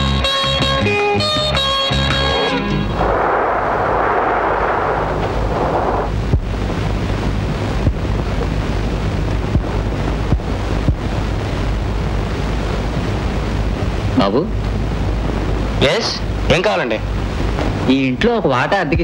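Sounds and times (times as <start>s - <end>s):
low hum: 2.2s - 17.9s
sea surf washing in: 2.7s - 17.9s
steady hiss: 2.7s - 19.0s.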